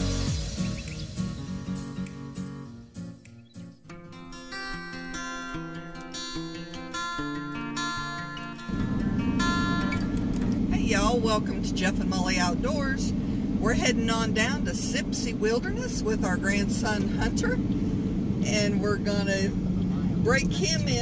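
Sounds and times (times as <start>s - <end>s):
background music with plucked notes: 0.0s - 10.9s
car road and engine noise: 0.0s - 21.0s
voices talking: 18.5s - 21.0s.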